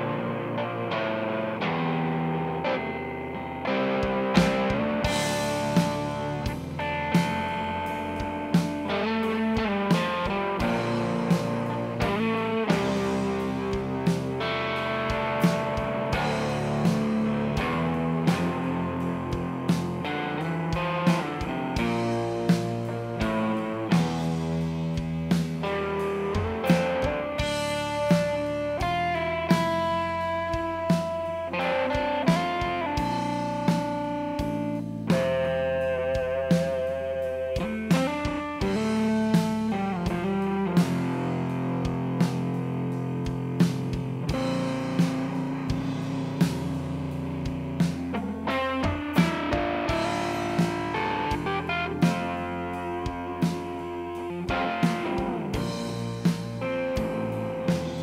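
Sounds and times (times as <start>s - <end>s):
bass guitar: 0.0s - 58.0s
electric guitar melody: 0.0s - 58.0s
slow steady drum beat: 2.2s - 58.0s.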